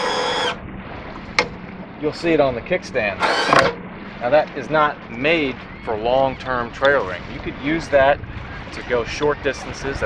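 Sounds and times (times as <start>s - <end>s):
tilt pump motor whining: 0.0s - 0.6s, 3.2s - 3.8s.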